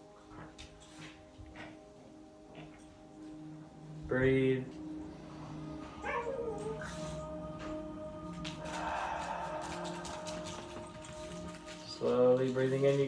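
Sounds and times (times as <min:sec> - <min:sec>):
soft background music: 0:00.0 - 0:13.0
dog whining: 0:05.8 - 0:07.8.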